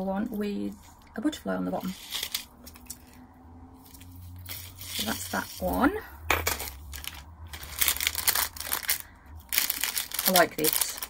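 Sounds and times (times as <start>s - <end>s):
plastic packaging crinkling: 1.8s - 3.2s, 6.4s - 11.0s.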